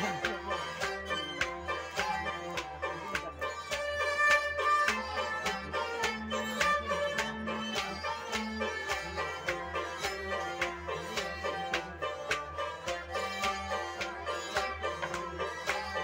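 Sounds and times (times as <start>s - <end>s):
sustained melody line: 0.0s - 16.0s.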